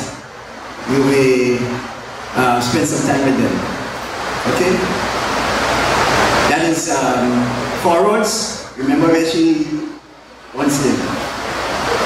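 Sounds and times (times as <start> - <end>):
heavy rain: 0.0 - 12.0.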